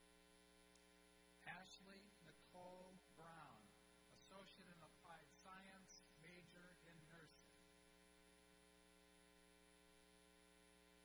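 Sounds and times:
faint electrical hum: 0.0s - 11.0s
person speaking: 1.4s - 7.6s.

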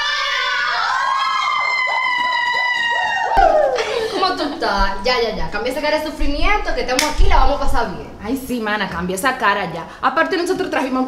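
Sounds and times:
women shrieking excitedly: 0.0s - 4.1s.

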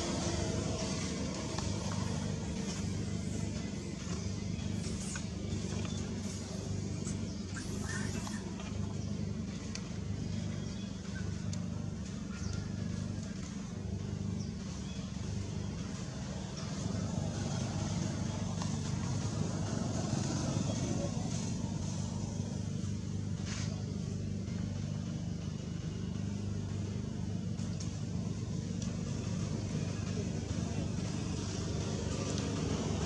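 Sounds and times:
low mechanical hum: 0.0s - 33.0s.

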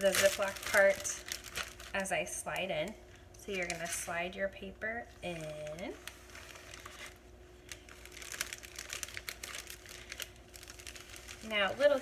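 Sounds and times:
plastic bag and paper crinkling: 0.0s - 2.7s, 3.5s - 4.3s, 5.2s - 12.0s.

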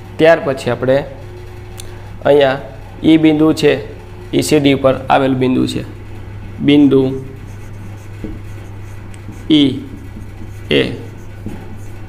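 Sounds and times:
steady low hum: 0.0s - 12.0s
marker writing on a whiteboard: 7.2s - 12.0s.

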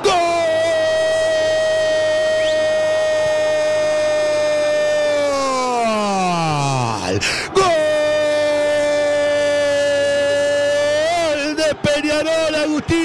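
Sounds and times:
commentator's drawn-out goal cry: 0.0s - 13.0s.

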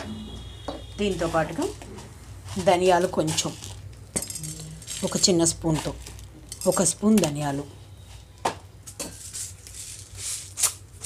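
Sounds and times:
lentils roasting crackling in pan: 1.0s - 7.6s, 8.8s - 11.0s.

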